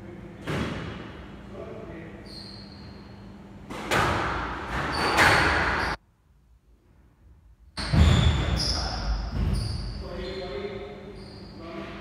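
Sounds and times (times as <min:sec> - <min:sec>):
squash ball hitting court walls: 0:03.7 - 0:06.0.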